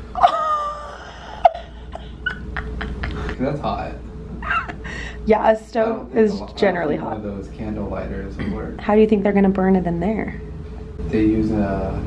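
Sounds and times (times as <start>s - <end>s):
breathy laughter: 0.2s - 3.6s.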